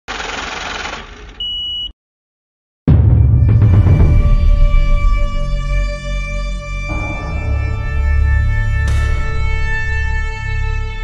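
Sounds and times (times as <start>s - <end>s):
high-pitched beep: 1.4s - 1.9s.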